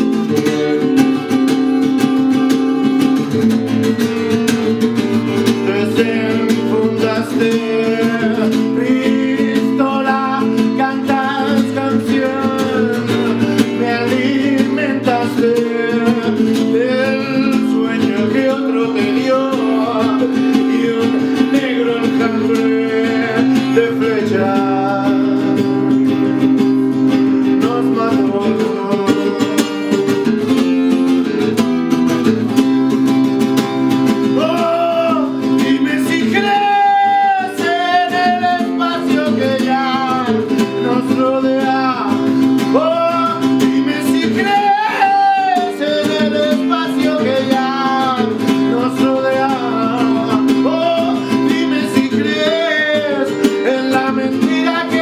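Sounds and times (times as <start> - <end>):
man singing: 0.0 - 31.4, 34.0 - 55.0
acoustic guitar fingerpicked: 0.0 - 55.0.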